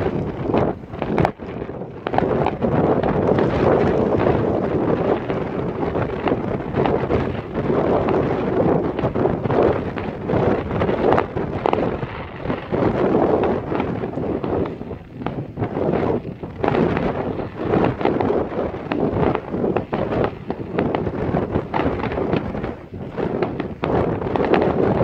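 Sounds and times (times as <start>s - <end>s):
fireworks bangs and crackles: 0.0s - 25.0s
wind buffeting microphone: 0.0s - 25.0s.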